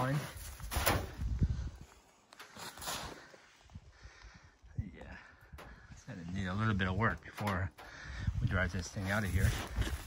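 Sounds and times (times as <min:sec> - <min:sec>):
footsteps crunching in snow: 0:02.5 - 0:03.3, 0:08.9 - 0:10.0.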